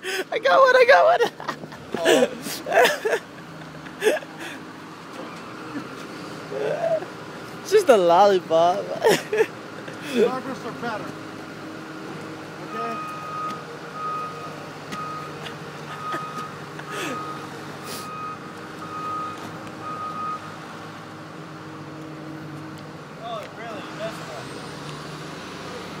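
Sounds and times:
truck reversing alarm beeping: 11.9s - 21.0s.

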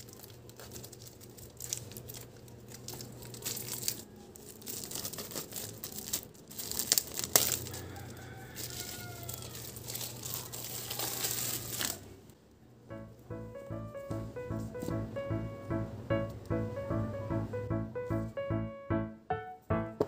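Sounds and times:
plastic wrapping crinkling: 0.0s - 12.2s
background music with keyboard notes: 12.9s - 20.0s.

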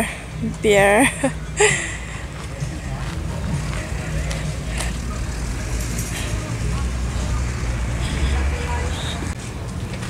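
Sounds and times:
vehicle engine rumbling: 0.0s - 10.0s
background voices: 1.6s - 9.4s.

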